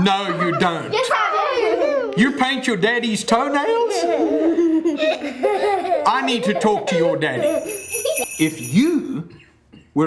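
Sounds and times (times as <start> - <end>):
man and children laughing: 0.0 - 2.5, 3.3 - 8.7.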